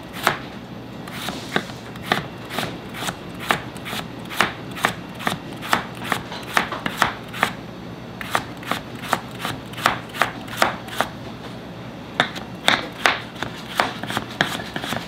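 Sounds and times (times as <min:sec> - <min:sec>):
knife slicing a carrot: 0:01.1 - 0:07.6, 0:08.2 - 0:11.1, 0:12.9 - 0:15.0.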